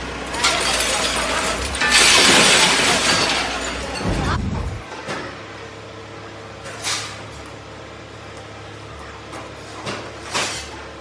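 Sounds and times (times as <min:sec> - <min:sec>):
scrap metal crashing into truck bed: 0:00.3 - 0:04.8.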